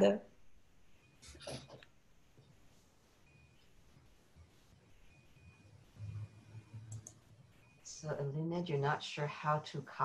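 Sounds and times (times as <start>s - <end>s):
faint clicks: 6.9s - 7.2s.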